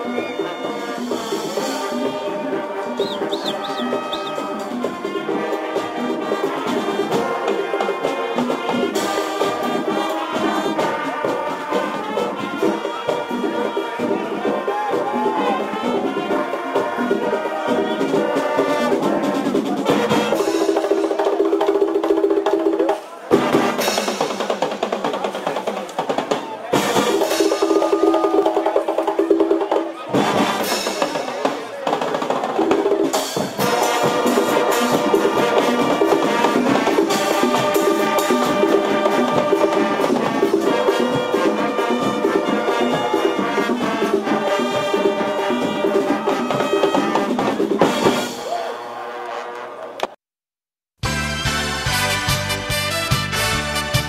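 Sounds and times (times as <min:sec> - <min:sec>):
brass chords: 0:00.0 - 0:21.4, 0:23.3 - 0:24.7, 0:26.7 - 0:31.7, 0:32.8 - 0:50.2, 0:51.0 - 0:54.0
driving drum and percussion rhythm: 0:00.0 - 0:48.8, 0:51.0 - 0:54.0.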